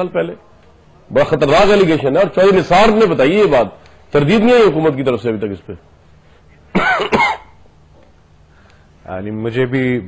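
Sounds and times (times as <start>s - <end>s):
man coughing: 6.7s - 7.6s.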